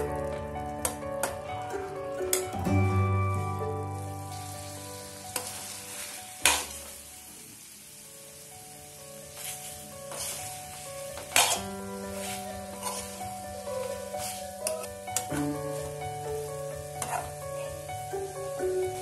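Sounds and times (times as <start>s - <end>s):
food sizzling in frying pan: 0.0s - 19.0s
metal spoon stirring: 9.4s - 15.9s, 17.0s - 17.4s
spoon clinking against pan: 11.3s - 11.7s.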